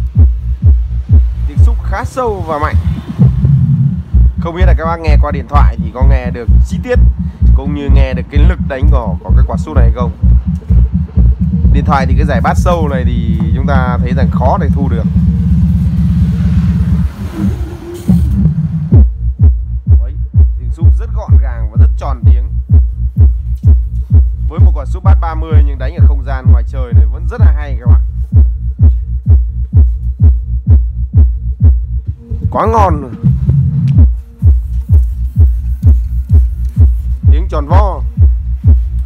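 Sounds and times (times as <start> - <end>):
deep punchy bass hits: 0.0 - 17.3, 18.1 - 39.0
bass-heavy music from subwoofer: 0.0 - 39.0.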